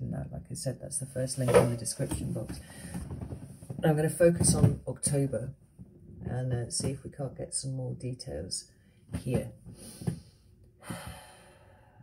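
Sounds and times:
woman sighing: 10.8 - 11.7.

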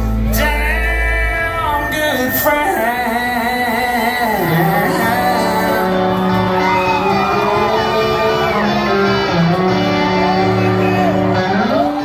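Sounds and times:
country band playing: 0.0 - 12.0.

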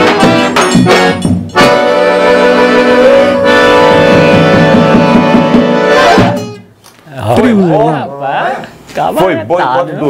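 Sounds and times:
band with accordion drum and guitar: 0.0 - 6.8.

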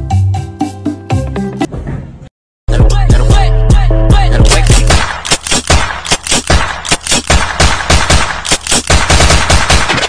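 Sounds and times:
automatic gunfire: 4.5 - 10.0.

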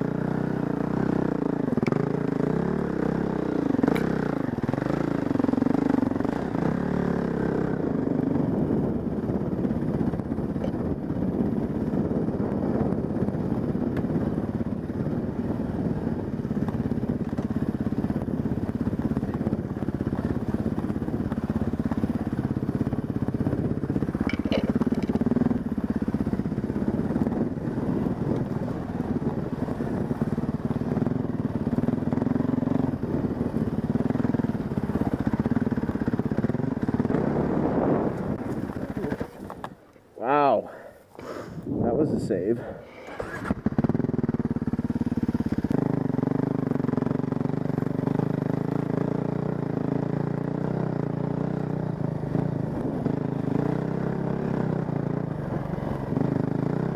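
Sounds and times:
dirt bike engine running: 0.0 - 56.9
wind: 0.0 - 56.9
rattle: 24.2 - 25.3.

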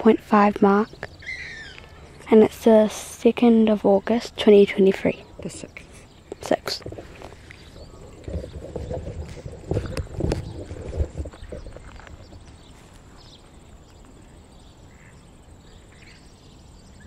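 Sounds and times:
distant bird chirps: 0.0 - 17.0
thumps and scuffing near microphone: 6.3 - 13.4.

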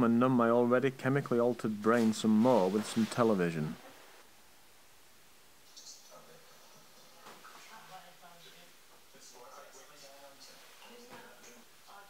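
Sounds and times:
muffled television voices talking: 5.9 - 12.0.

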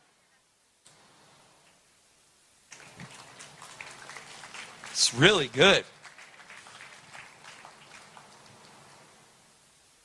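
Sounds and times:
faint scattered applause: 2.7 - 9.3.

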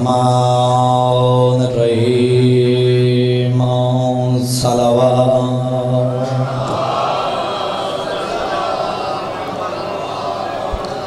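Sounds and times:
man chanting: 0.0 - 8.4.

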